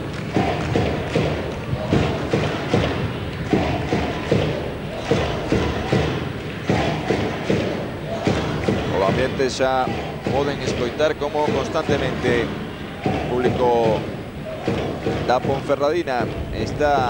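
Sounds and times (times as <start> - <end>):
crowd chanting: 0.0 - 17.0
drum beating steady rhythm: 0.0 - 17.0.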